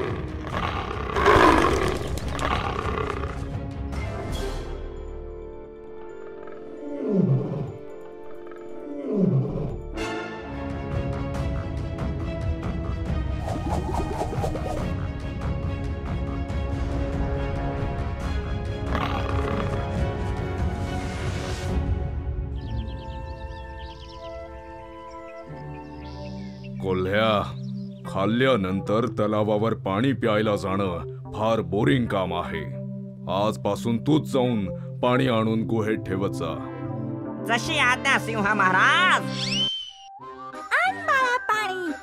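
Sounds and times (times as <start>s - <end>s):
cartoon lion roaring: 0.0s - 3.5s, 18.9s - 20.0s
background music: 0.0s - 42.0s.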